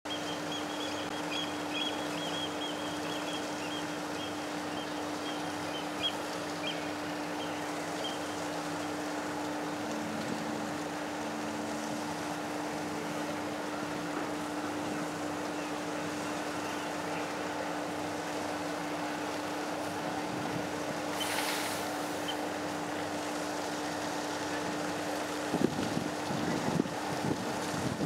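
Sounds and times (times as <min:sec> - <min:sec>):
ship low hum: 0:00.1 - 0:28.0
outdoor hiss: 0:00.6 - 0:28.0.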